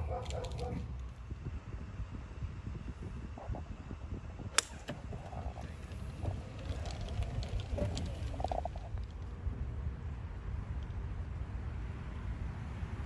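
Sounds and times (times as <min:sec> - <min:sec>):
wind rumble on microphone: 0:00.0 - 0:13.0
golf club striking ball: 0:04.5 - 0:05.0.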